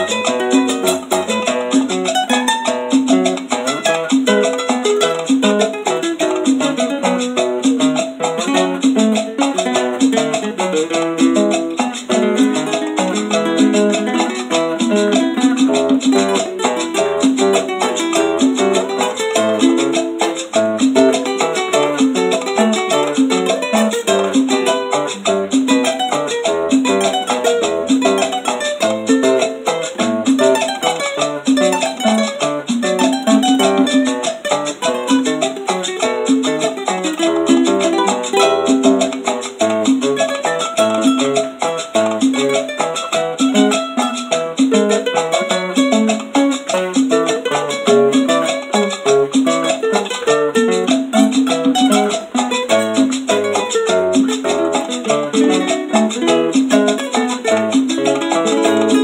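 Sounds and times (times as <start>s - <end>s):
guitar picked melody: 0.0s - 59.0s.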